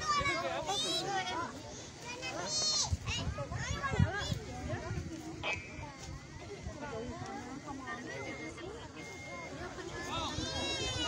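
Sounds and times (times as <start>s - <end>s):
people chattering: 0.0s - 11.0s
wind buffeting microphone: 1.9s - 7.9s.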